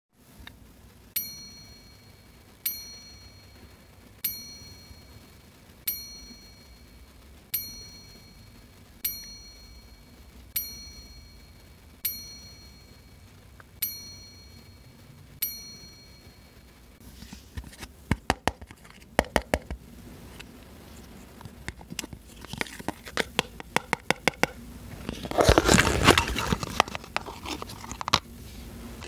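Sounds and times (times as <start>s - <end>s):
bell-like ding: 1.2s - 5.3s, 5.9s - 7.0s, 7.6s - 16.7s.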